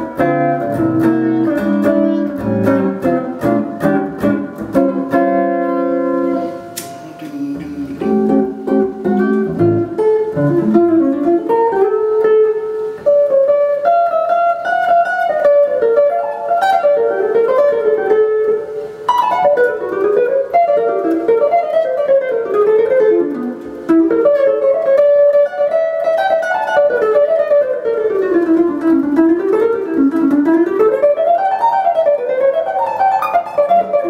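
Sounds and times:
electric guitar jazz runs: 0.0s - 34.0s.

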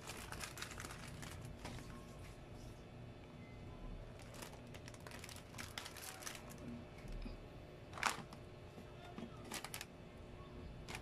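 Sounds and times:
plastic packaging crinkling: 0.0s - 2.0s, 4.2s - 6.7s, 7.9s - 8.4s, 9.4s - 9.9s.

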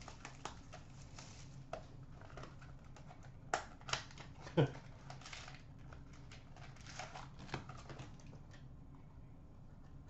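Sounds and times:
cards rustling and clicking: 0.0s - 8.7s.

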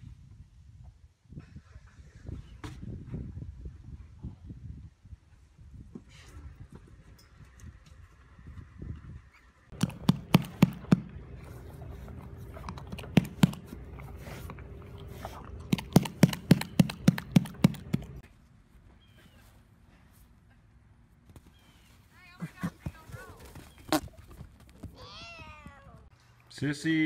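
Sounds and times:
horse knocking on wood: 9.7s - 11.2s, 12.7s - 13.8s, 15.7s - 18.2s.

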